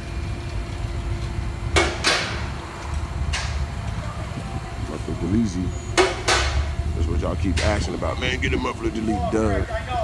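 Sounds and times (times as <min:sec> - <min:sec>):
low rumble of workshop: 0:00.0 - 0:10.0.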